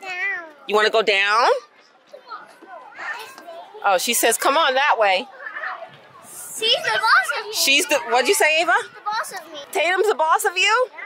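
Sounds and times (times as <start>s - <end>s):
children's voices and chatter: 0.0s - 11.0s.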